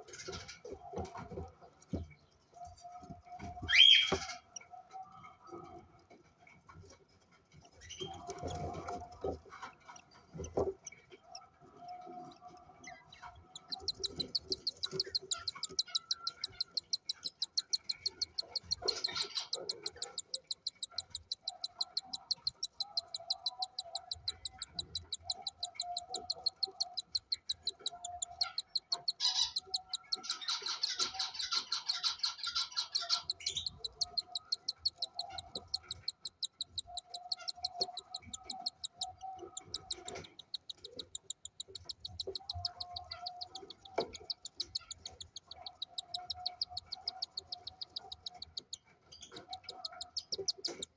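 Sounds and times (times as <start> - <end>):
bird chick begging cheeps: 13.6 - 48.6.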